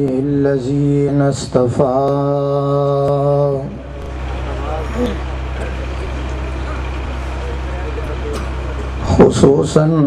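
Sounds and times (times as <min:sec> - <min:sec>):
steady low hum: 0:00.0 - 0:10.0
faint voices murmuring: 0:03.7 - 0:10.0.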